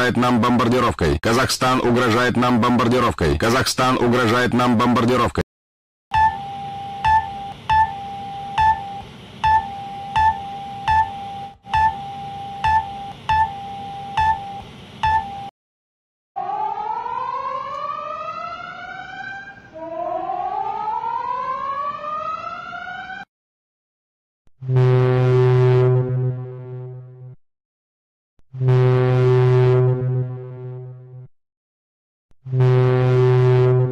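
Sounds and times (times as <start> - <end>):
emergency alert tone with beeps: 6.1 - 15.5
rising siren sweeps: 16.4 - 23.3.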